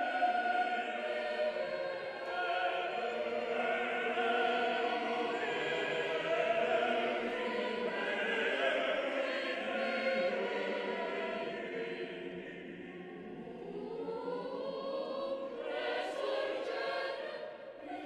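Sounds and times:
choir singing slow chords: 0.0s - 18.0s.

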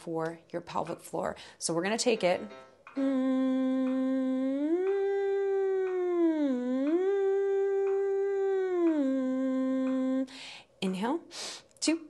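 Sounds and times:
woman humming sliding scale: 2.4s - 10.3s
quick nasal inhales: 11.3s - 11.7s.

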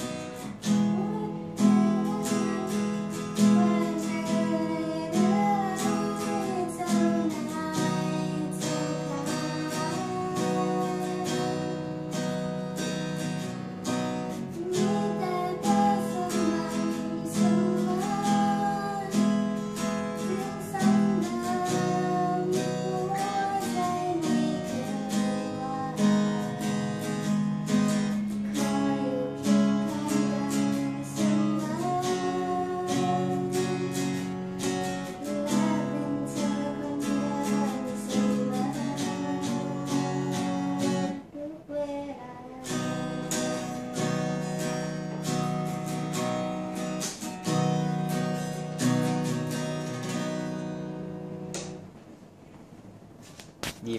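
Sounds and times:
woman singing slow pop song: 0.0s - 12.3s, 14.3s - 46.3s
acoustic guitar strumming: 0.0s - 53.9s.

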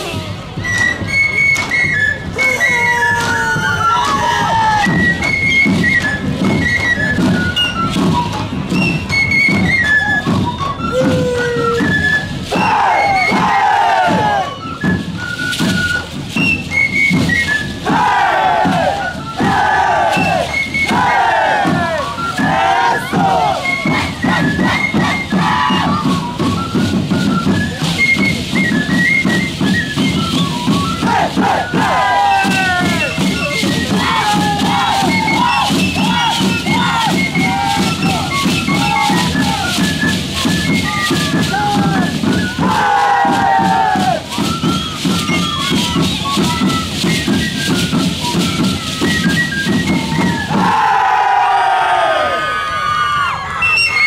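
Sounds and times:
band music: 10.1s - 54.0s
dancers whooping: 10.8s - 14.6s, 50.1s - 54.0s.

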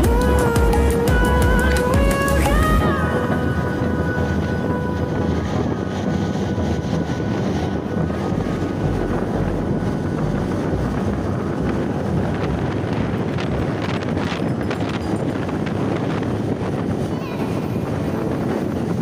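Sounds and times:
wind rushing over microphone: 0.0s - 19.0s.

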